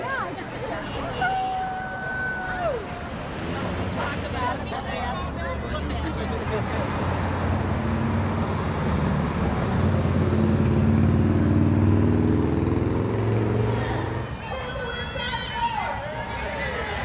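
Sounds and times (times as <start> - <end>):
road traffic passing: 0.0 - 17.0
car engine passing by: 3.1 - 14.3.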